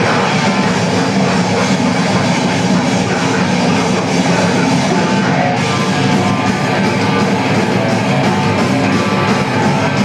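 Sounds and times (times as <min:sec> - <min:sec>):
distorted guitar: 0:00.0 - 0:10.0
drums: 0:00.0 - 0:10.0.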